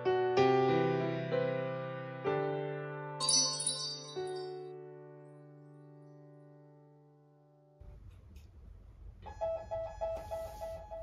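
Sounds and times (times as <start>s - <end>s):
low room rumble: 7.8s - 9.4s.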